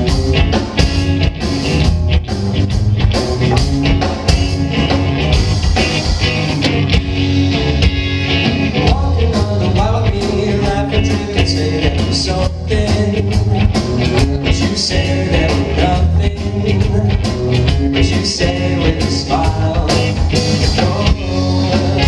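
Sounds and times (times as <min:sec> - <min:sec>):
bass guitar: 0:00.0 - 0:22.0
drum kit: 0:00.0 - 0:22.0
electric guitars: 0:00.0 - 0:22.0.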